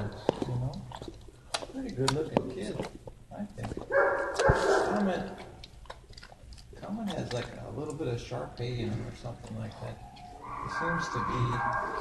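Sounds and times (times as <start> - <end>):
loud drawn-out bark: 3.9 - 5.0, 10.4 - 12.0
dogs barking: 3.9 - 5.5, 9.9 - 12.0.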